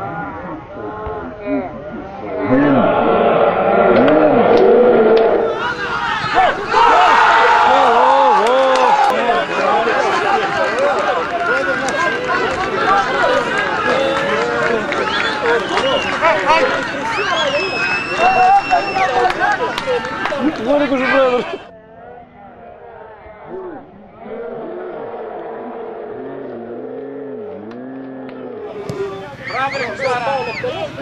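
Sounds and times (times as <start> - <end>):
crowd shouting and cheering: 0.0 - 31.0.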